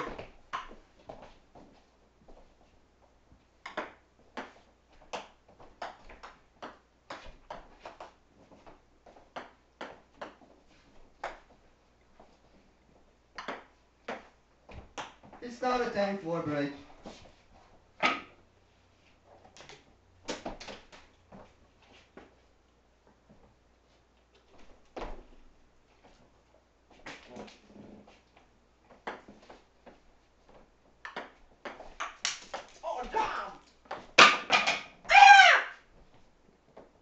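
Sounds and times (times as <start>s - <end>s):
person shouting: 32.8s - 33.6s, 35.1s - 35.8s.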